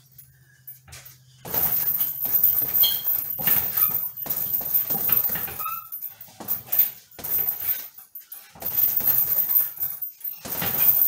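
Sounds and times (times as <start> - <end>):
chain jingling: 0.1 - 11.0
punches on heavy punching bag: 1.5 - 5.6, 8.6 - 11.0.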